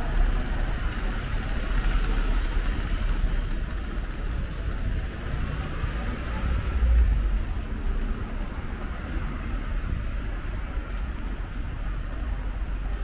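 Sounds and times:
light road traffic: 0.0s - 13.0s
low street rumble: 0.0s - 13.0s.

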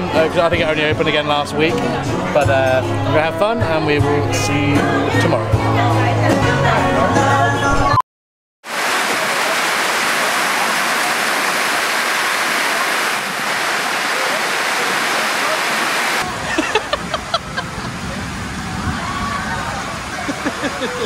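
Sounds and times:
heavy rain pouring: 8.6s - 21.0s.

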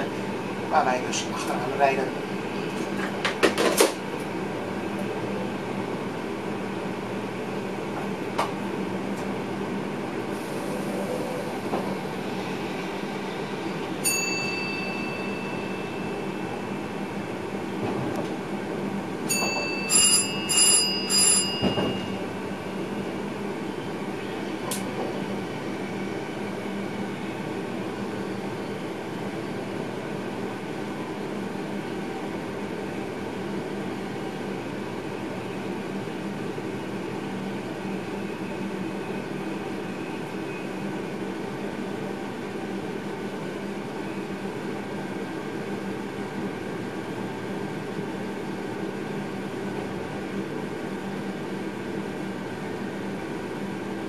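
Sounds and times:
train running hum and rumble: 0.0s - 54.0s
electronic chime: 14.0s - 16.5s.

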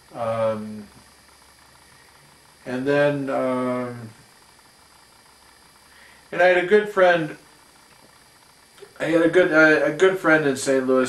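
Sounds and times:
faint hiss with thin hum: 0.0s - 11.0s.

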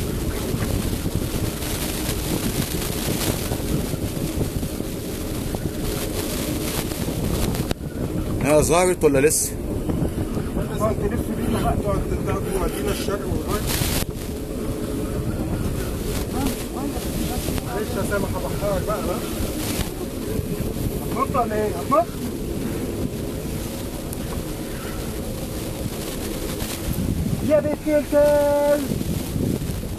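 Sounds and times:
sea washing around boat: 0.0s - 29.9s
wind buffeting microphone: 0.0s - 29.9s.

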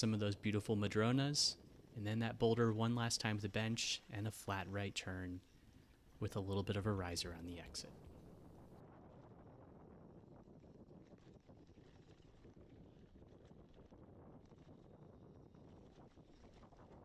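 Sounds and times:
wind on microphone: 0.0s - 17.0s.

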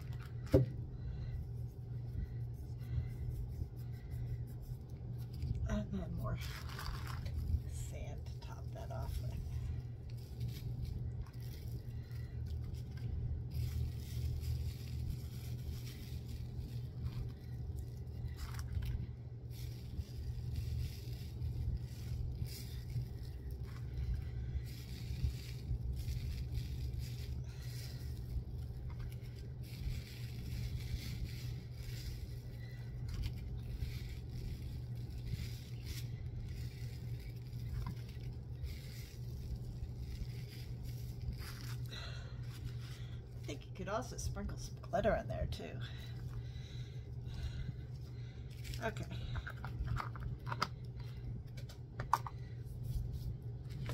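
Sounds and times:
steady low hum: 0.0s - 53.9s
small scrapes clicks and rustles: 1.3s - 46.4s, 47.9s - 53.9s.

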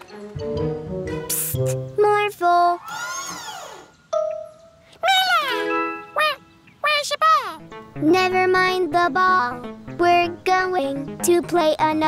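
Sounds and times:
cartoon music: 0.4s - 2.3s, 4.2s - 12.0s.

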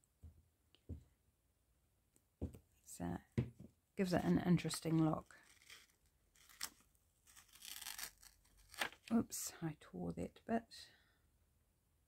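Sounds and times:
page tearing from book: 5.4s - 9.1s.

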